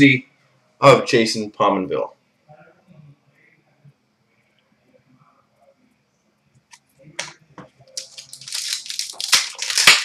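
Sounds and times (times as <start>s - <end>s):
foil wrapper crinkling and tearing: 7.9s - 10.0s.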